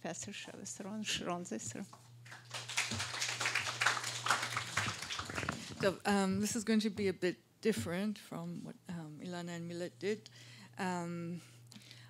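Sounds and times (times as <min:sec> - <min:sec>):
steady low hum: 0:00.0 - 0:12.0
audience clapping: 0:02.2 - 0:05.8.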